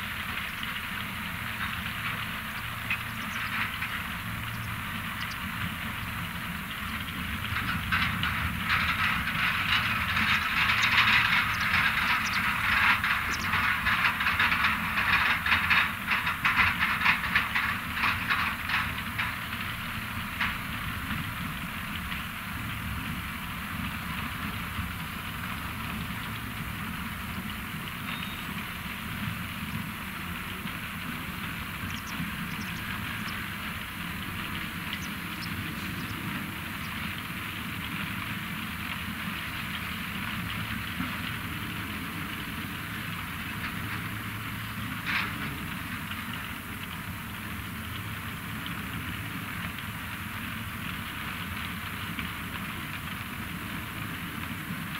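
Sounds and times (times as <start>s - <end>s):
engine drone: 0.0s - 54.9s.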